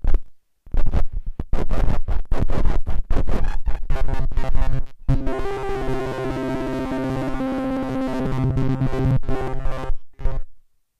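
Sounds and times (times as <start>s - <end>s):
buzzy pitched looping tone: 2.0s - 10.5s.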